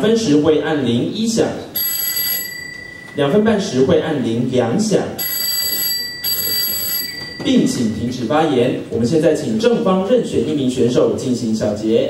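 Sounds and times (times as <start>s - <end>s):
bell ringing: 1.8s - 4.3s, 5.2s - 8.6s.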